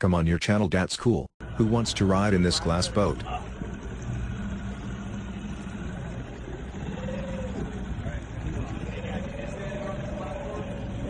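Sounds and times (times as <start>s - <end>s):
outboard motor running: 1.4s - 11.0s.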